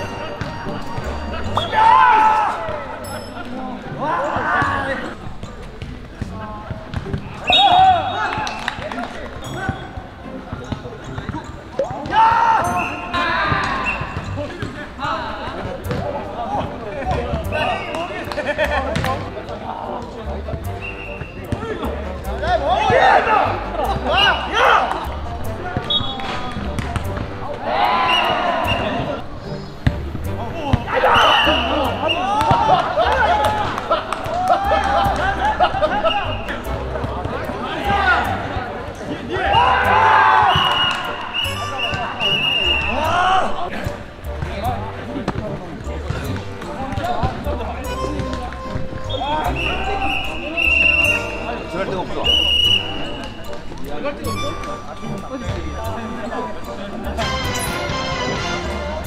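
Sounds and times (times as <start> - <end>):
players shouting: 0.0 - 5.3, 7.1 - 9.9, 11.8 - 20.2, 20.8 - 29.2, 30.3 - 43.9.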